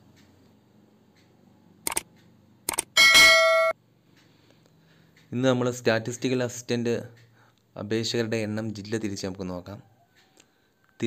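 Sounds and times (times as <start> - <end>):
short clicks: 1.9 - 3.0
bright bell-like ding: 3.0 - 3.8.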